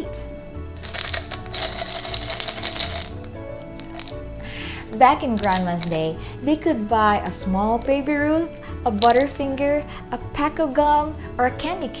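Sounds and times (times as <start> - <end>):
soft background music: 0.0 - 12.0
coins rattling in glass jar: 0.8 - 4.2, 4.9 - 6.1, 9.0 - 9.4.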